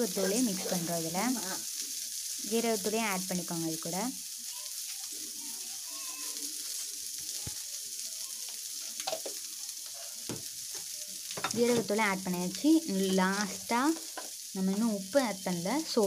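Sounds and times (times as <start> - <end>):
food sizzling in oil: 0.0 - 16.0.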